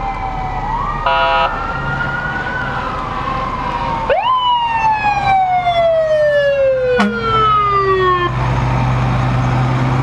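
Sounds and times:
fire truck sirens wailing: 0.0s - 10.0s
horn blast: 7.0s - 7.4s.

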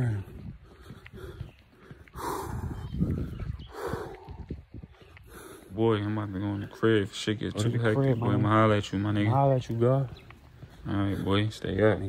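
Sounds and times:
heavy breaths: 0.0s - 6.7s, 10.1s - 11.9s.

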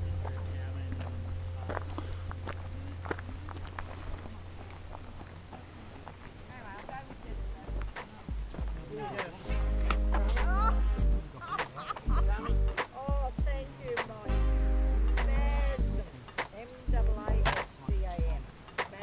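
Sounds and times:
footsteps on gravel: 0.0s - 10.5s
low steady hum: 0.0s - 18.6s
distant people chatting: 0.0s - 19.0s.

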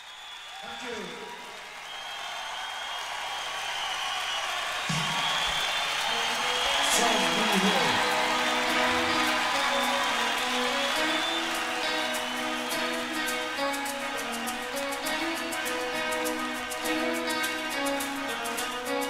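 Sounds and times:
audience cheering: 0.0s - 19.0s
band holding notes: 6.0s - 19.0s.

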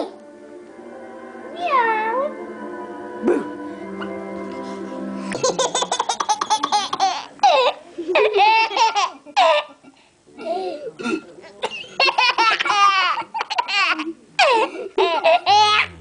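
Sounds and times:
baby laughing: 5.4s - 9.7s, 12.0s - 16.0s.

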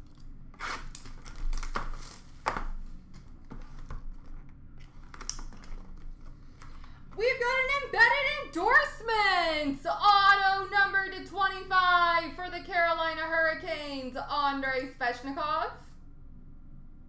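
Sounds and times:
foil wrappers crinkling: 0.0s - 7.0s.

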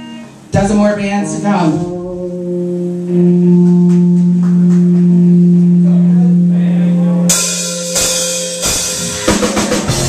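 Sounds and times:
electric guitar droning note: 0.0s - 9.3s
faint higher guitar notes: 0.0s - 10.0s.

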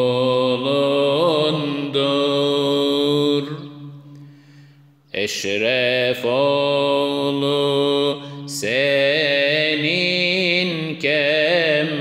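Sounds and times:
man singing a hymn: 0.0s - 3.6s, 5.2s - 12.0s.

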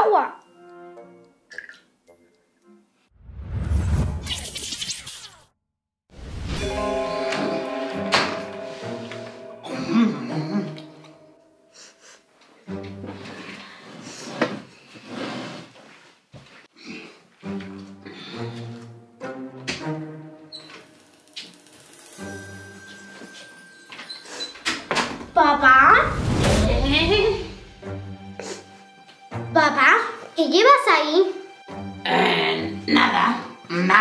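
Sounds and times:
background music: 0.0s - 3.1s, 6.2s - 13.9s, 17.3s - 34.0s.

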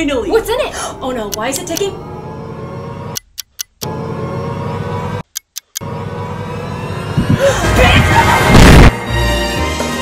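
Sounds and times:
sharp clock-like ticks: 3.1s - 3.9s, 5.2s - 5.9s
background music: 5.8s - 10.0s.

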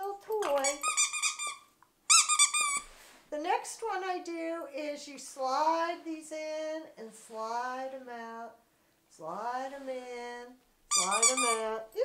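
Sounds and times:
dog toy squeaking: 0.4s - 2.9s, 10.9s - 11.8s.

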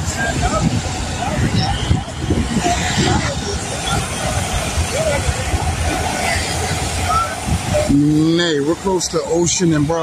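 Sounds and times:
indistinct voices: 0.0s - 10.0s
road traffic: 0.0s - 10.0s.

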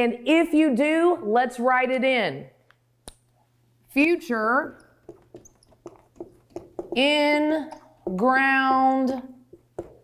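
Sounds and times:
marker squeaking on whiteboard: 4.7s - 8.2s.

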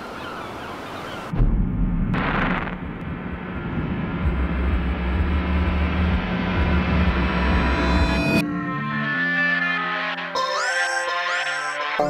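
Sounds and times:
deep rumbling drone: 1.3s - 8.5s.

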